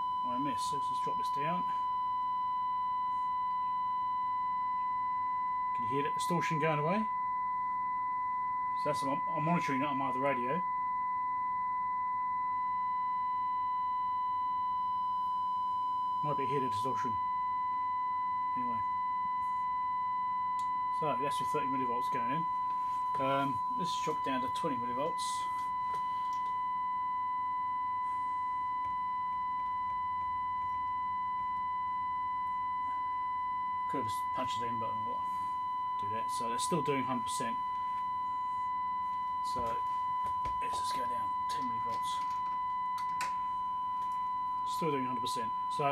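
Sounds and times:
test tone through radio: 0.0s - 45.9s.

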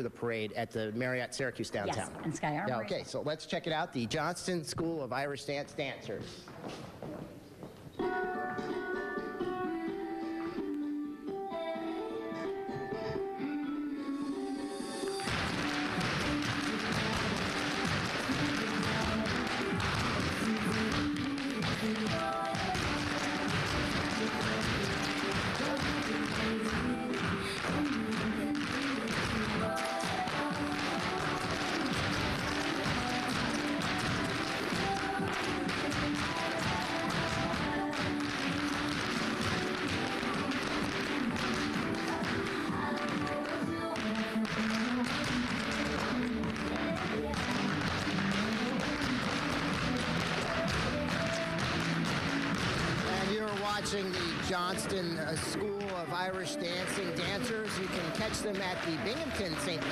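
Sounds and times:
dance tune over loudspeaker: 14.0s - 59.9s
dance shoes tapping on wood: 15.2s - 59.9s.

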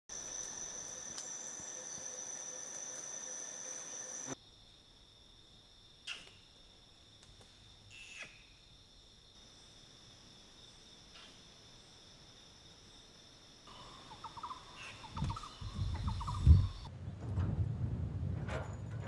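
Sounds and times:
insects buzzing: 0.1s - 16.9s.

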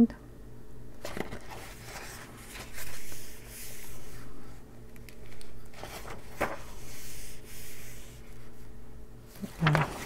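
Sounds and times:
hand rubbing paper pages: 1.0s - 10.0s.

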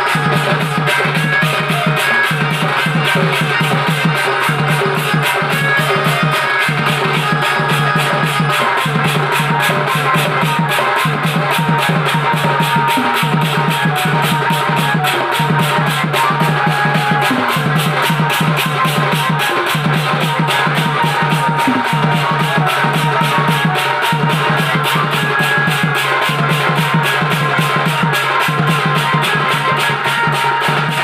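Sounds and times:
hand-beaten barrel drum: 0.0s - 31.0s
keyboard playing: 5.0s - 26.2s.

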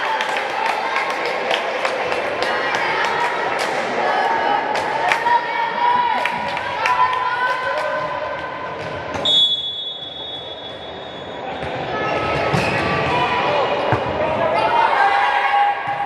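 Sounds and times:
echoing voices in hall: 0.0s - 16.0s
referee's whistle: 9.2s - 11.6s.

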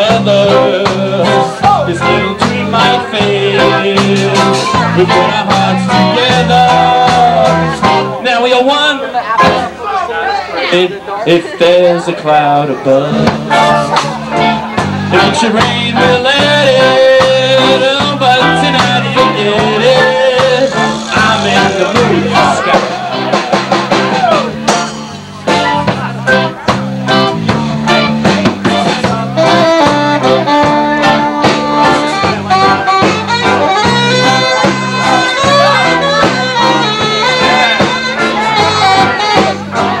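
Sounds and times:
driving drum beat: 0.0s - 8.8s, 13.0s - 40.0s
live ska band playing: 0.0s - 40.0s
saxophone and horns: 12.9s - 40.0s.

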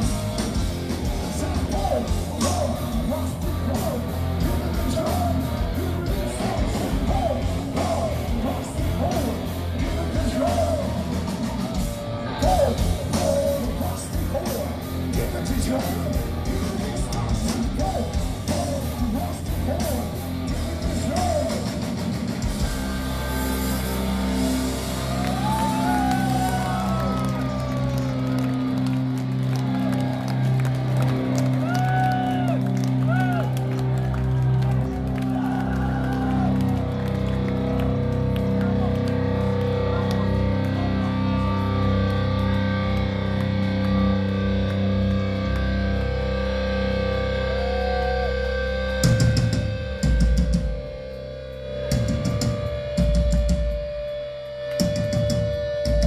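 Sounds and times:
distorted electric guitars: 0.0s - 56.0s
heavy metal band playing live: 0.0s - 56.0s.

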